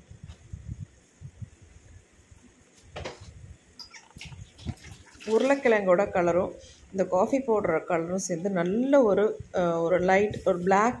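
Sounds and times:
water boiling in a pan: 0:03.8 - 0:06.0.

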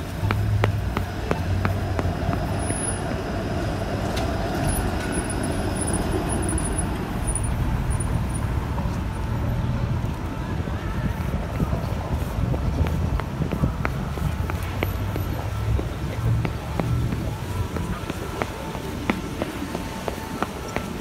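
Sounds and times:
city traffic noise: 0:00.0 - 0:21.0.

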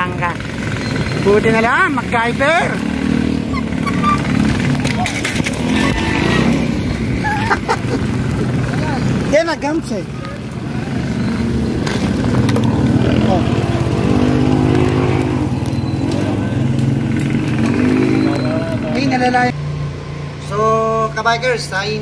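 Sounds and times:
motor vehicle running close by: 0:00.0 - 0:21.0
road traffic rumble: 0:00.0 - 0:22.0.

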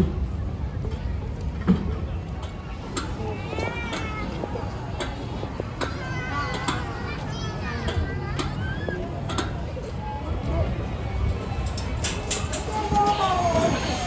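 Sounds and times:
general chatter outdoors: 0:00.0 - 0:14.0
children's high voices and squeals: 0:02.7 - 0:05.0, 0:05.6 - 0:11.3, 0:12.4 - 0:14.0.

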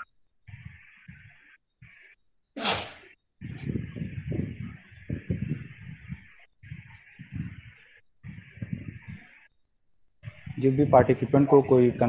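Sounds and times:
low muffled irregular sounds: 0:00.0 - 0:12.0.

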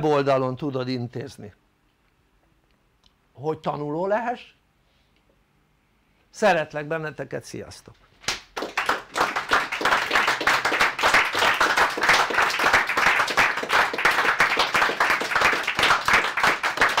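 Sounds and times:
audience applause: 0:08.6 - 0:17.0.

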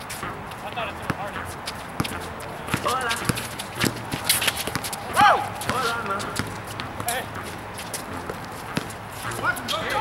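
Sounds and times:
players' voices: 0:00.0 - 0:10.0
sneakers slapping concrete: 0:00.0 - 0:10.0
basketball bouncing: 0:01.9 - 0:09.0.

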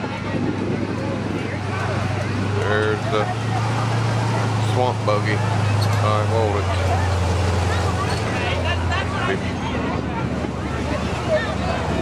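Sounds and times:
truck engine droning: 0:00.0 - 0:12.0.

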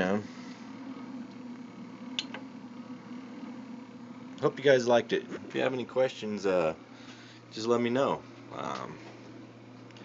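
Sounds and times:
battery inverter humming: 0:00.0 - 0:10.0
cooling fan running: 0:00.0 - 0:10.0.

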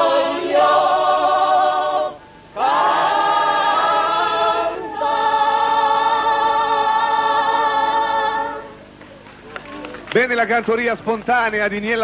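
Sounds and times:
group singing in chorus: 0:00.0 - 0:08.8.

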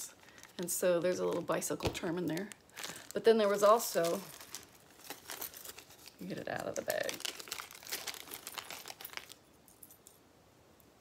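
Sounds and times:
small bag crinkling: 0:00.0 - 0:10.2.

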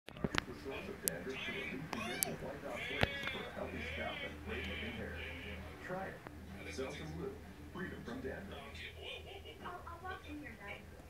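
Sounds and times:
high quavering bleat-like cry: 0:01.3 - 0:05.7.

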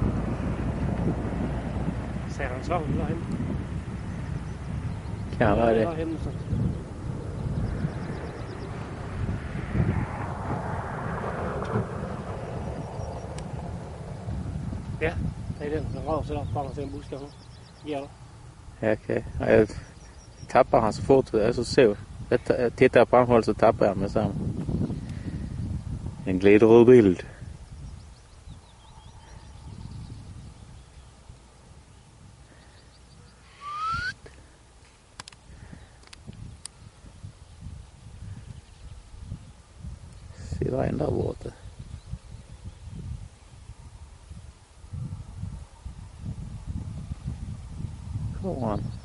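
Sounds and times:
wind rumbling on microphone: 0:00.0 - 0:49.0
rising whistle: 0:33.5 - 0:34.2.

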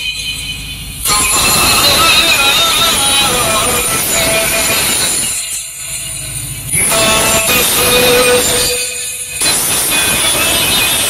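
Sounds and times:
loud distorted dance music: 0:00.0 - 0:11.0.

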